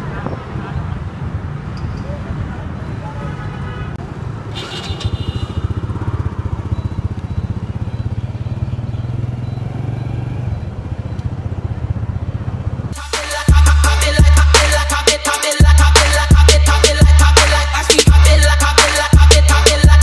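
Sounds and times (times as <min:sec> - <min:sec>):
vehicle engine running: 0:04.7 - 0:13.0.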